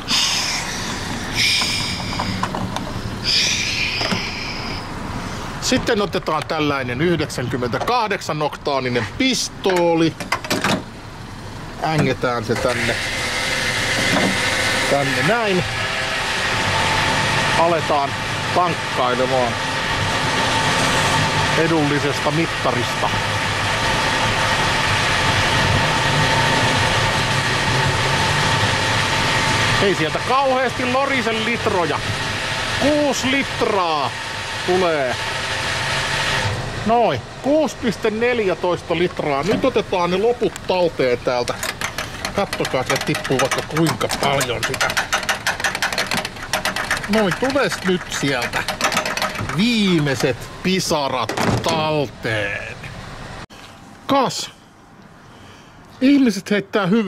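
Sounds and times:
fuel pump whirring: 0.0 - 54.0
fuel cap scraping as unscrewed: 1.6 - 2.9, 41.4 - 50.3.

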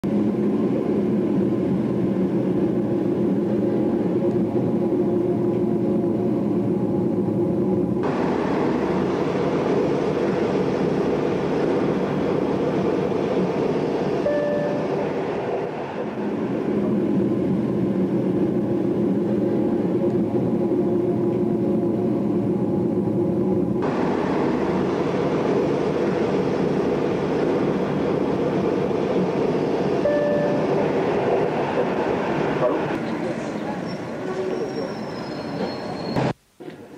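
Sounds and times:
moving train rumble: 0.0 - 36.9
faint squeal: 33.5 - 36.3.

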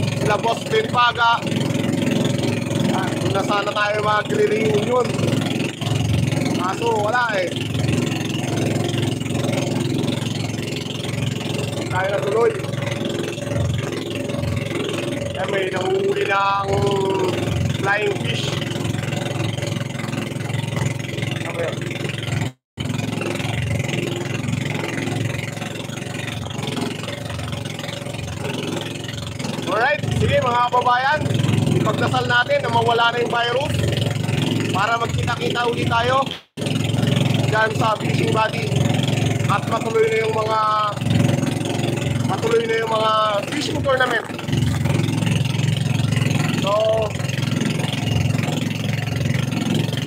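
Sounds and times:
boat engine pulsing hum: 0.0 - 50.0
water splashing and rushing: 0.0 - 50.0.

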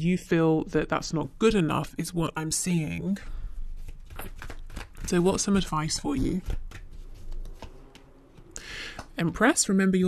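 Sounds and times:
cards being shuffled: 3.6 - 9.2.

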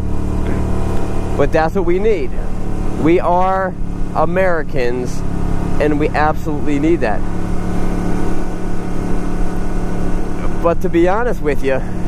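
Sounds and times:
motorcycle engine running: 0.0 - 12.0
road and wind noise: 0.0 - 12.0.

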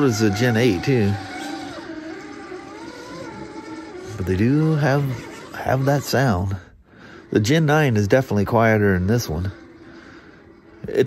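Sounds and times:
toy car drivetrain whining: 0.0 - 11.0.

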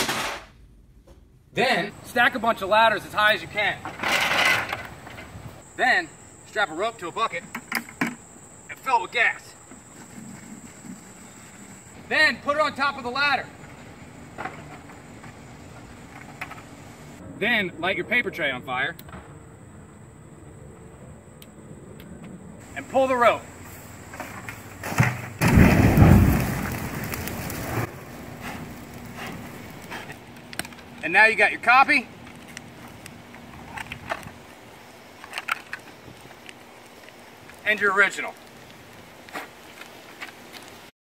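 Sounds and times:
fire igniting whoosh: 23.4 - 31.0.

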